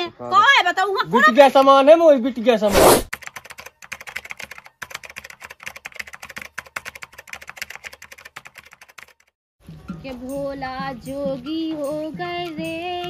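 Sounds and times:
keyboard typing clicks: 0:03.2 - 0:09.3.

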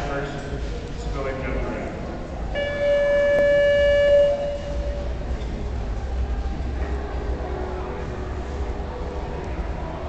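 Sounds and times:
horn holding a note: 0:02.6 - 0:05.3.

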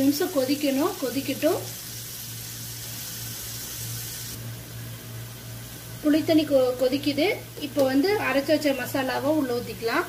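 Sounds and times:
gravy simmering hiss: 0:00.0 - 0:10.0.

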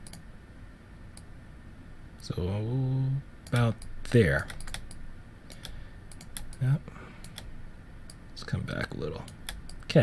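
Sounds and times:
keyboard keys clicking: 0:03.5 - 0:07.5.

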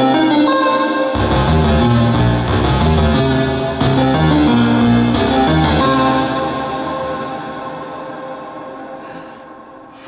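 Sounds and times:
held keyboard chord: 0:00.0 - 0:09.7.

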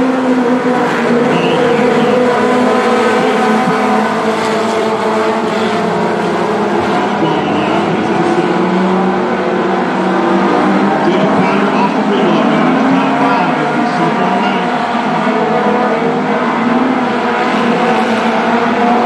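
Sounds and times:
race car engines: 0:00.0 - 0:19.0.

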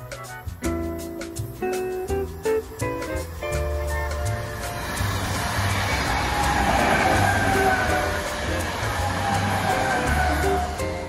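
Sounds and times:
background music with bass line: 0:00.0 - 0:11.0
train wheels rushing on rail: 0:02.4 - 0:11.0
train whine falling in pitch: 0:05.0 - 0:11.0.

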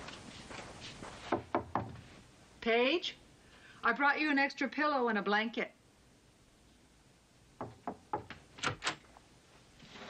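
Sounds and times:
knocks on a door: 0:01.3 - 0:02.0, 0:07.6 - 0:08.4.

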